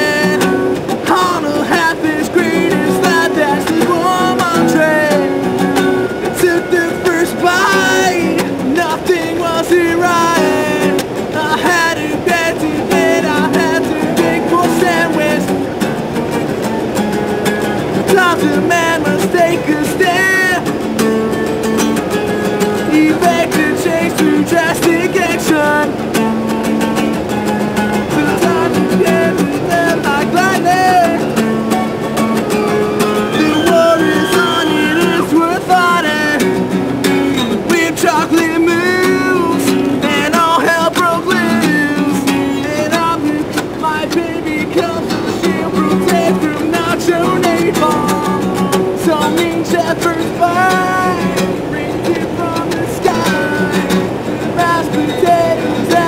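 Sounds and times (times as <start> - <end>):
strummed guitar chords: 0.0 - 56.0
person singing: 1.1 - 15.6, 18.0 - 20.8, 22.8 - 26.0, 28.1 - 31.3, 32.7 - 36.4, 37.2 - 56.0.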